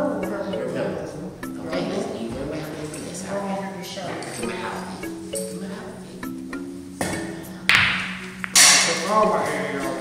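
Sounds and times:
background music: 0.0 - 10.0
cue striking ball: 7.0 - 9.1.

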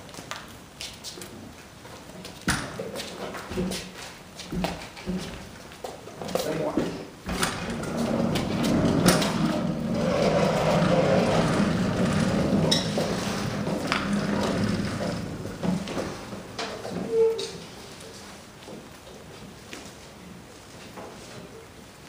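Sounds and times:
metal knocks and clanks: 7.3 - 17.1
hand truck wheels rumbling on metal: 7.3 - 17.5.

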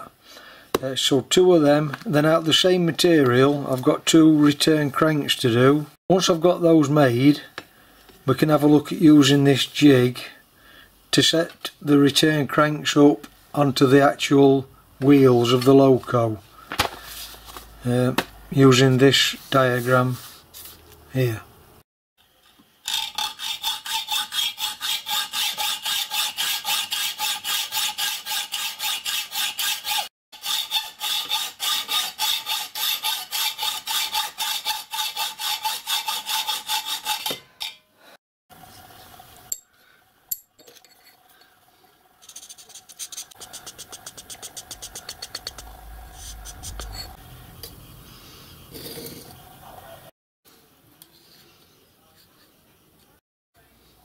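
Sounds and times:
hacksaw cutting steel: 22.8 - 37.8, 42.2 - 47.2.

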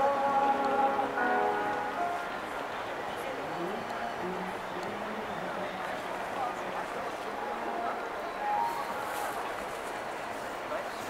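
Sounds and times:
city hum: 0.0 - 11.0
indistinct chatter: 0.0 - 11.0.

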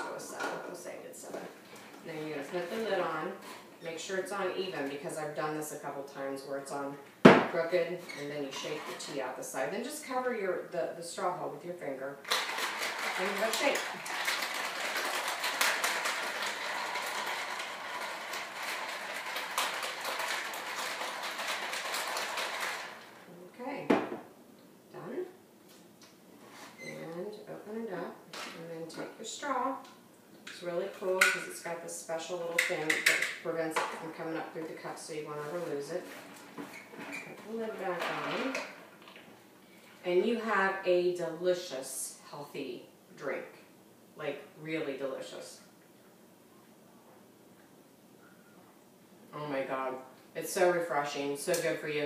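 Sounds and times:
ice cubes rattling in tumbler: 12.3 - 23.3
person speaking: 13.0 - 14.3, 37.2 - 38.8.

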